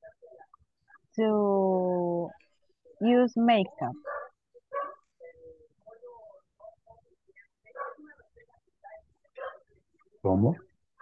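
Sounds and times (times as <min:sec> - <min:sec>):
person murmuring: 0:10.3 - 0:10.6.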